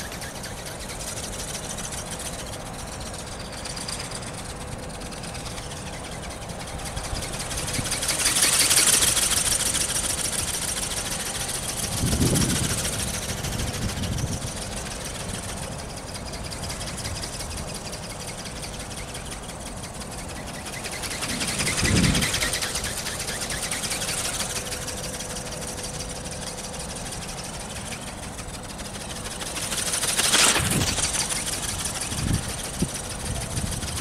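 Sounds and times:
small motor mechanical buzz: 0.0 - 34.0
wind rumbling on microphone: 11.4 - 17.7, 21.1 - 22.8, 30.3 - 34.0.

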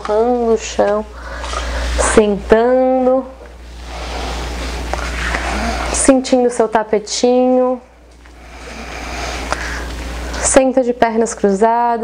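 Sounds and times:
person breathing: 1.1 - 2.0, 3.8 - 6.0, 8.3 - 10.0.

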